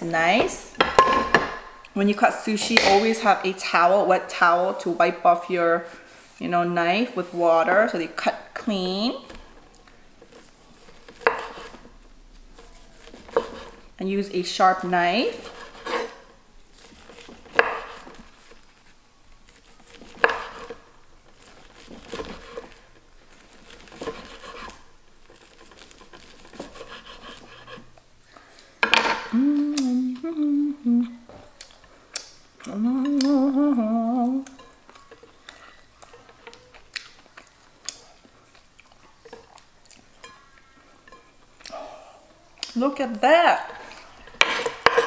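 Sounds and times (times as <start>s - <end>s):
knife slicing sushi: 10.3s - 13.9s, 15.2s - 18.8s, 19.4s - 22.8s, 23.4s - 27.9s
woman humming: 29.2s - 31.3s, 32.6s - 34.6s.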